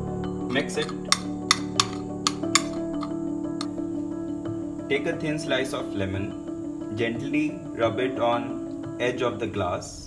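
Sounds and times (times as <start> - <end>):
background music: 0.0 - 10.0
teaspoon clinking against a plate: 0.4 - 3.2.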